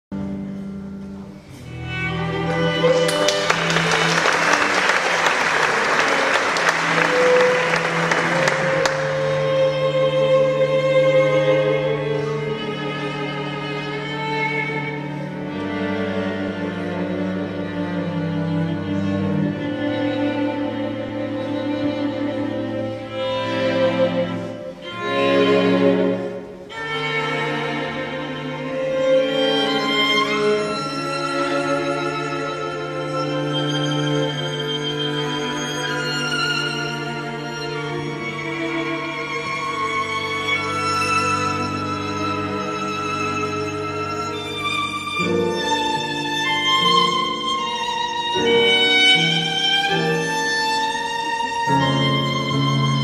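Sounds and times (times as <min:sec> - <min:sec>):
string section sustained chords: 0:00.1 - 0:53.0
audience applause: 0:02.5 - 0:09.6.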